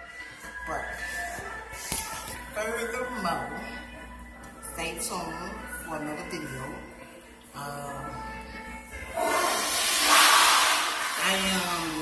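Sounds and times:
faint background music: 0:00.0 - 0:12.0
loud rushing hiss: 0:09.2 - 0:11.2.

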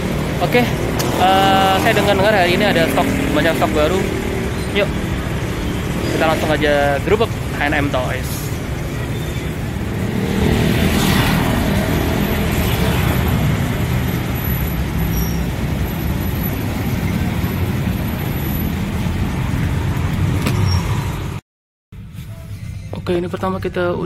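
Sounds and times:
motor vehicle rumble: 0:00.0 - 0:21.4
vehicle passing close by: 0:00.0 - 0:21.4.

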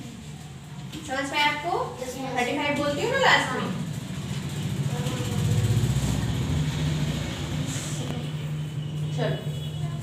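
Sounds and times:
vehicle engine running: 0:03.4 - 0:09.1.

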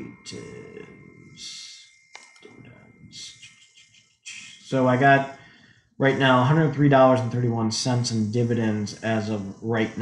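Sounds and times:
low mumbling: 0:00.0 - 0:01.8
computer mouse click: 0:02.1 - 0:02.5
faint breathing: 0:04.3 - 0:06.6.

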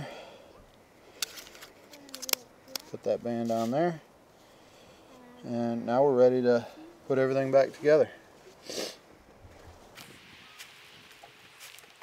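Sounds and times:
rubber seal clicks and snaps: 0:01.2 - 0:02.9.

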